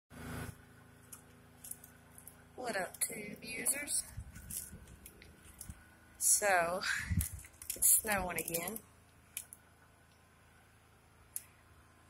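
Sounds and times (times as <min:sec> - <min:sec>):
light crackles: 0:01.0 - 0:05.9, 0:06.8 - 0:10.3.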